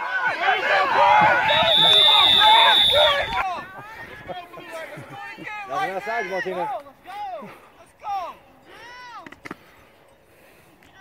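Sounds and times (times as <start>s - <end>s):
spectators cheering and shouting: 0.0s - 4.4s
referee's whistle blast: 1.3s - 3.4s.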